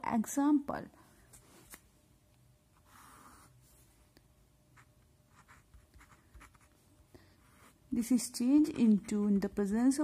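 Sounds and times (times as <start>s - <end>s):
pen scratching on paper: 4.8s - 6.8s.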